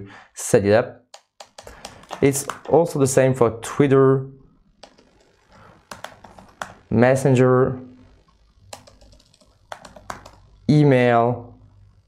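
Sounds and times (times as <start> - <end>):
keyboard typing: 1.1 - 2.8, 4.8 - 6.9, 8.6 - 10.5.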